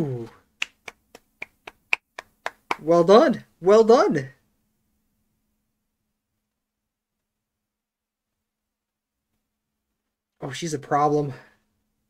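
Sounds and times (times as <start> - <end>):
person clapping hands: 0.6 - 2.9.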